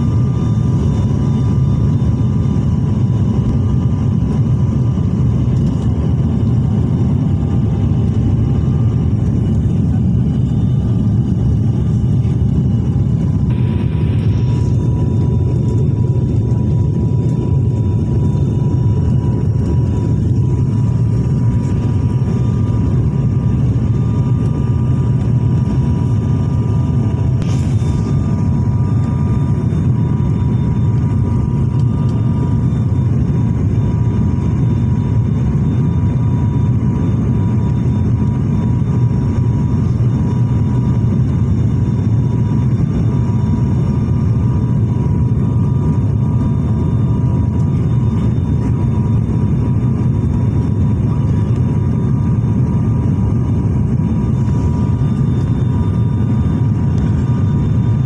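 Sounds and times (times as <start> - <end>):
airliner engines and propellers rumbling: 0.0 - 58.0
faint steady whine: 0.0 - 58.0.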